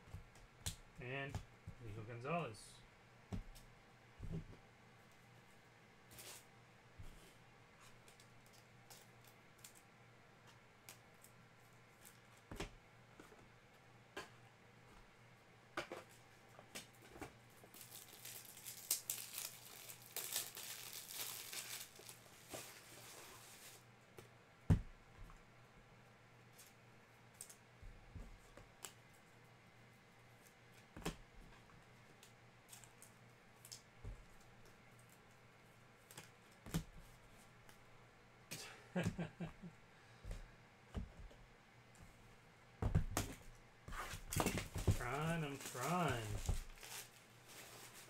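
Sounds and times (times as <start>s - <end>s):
packaging tearing and crinkling: 17.7s - 22.2s, 44.7s - 47.2s.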